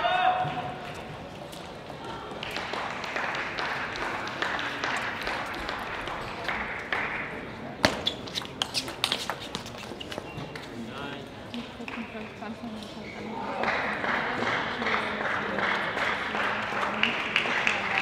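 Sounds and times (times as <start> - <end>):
voices in a hall: 0.0 - 18.0.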